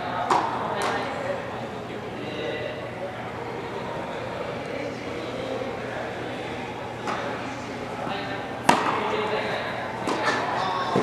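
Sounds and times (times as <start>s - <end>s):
faint voices murmuring: 0.0s - 11.0s
indoor hall hum: 0.0s - 11.0s.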